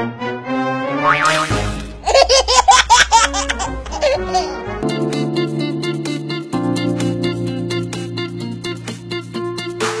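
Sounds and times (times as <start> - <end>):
background music: 0.0 - 10.0
person laughing: 2.0 - 4.7.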